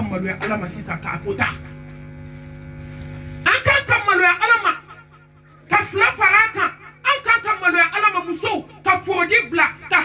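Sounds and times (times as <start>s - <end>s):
woman's amplified voice: 0.0s - 1.8s, 3.4s - 10.0s
electrical hum of sound system: 0.0s - 10.0s.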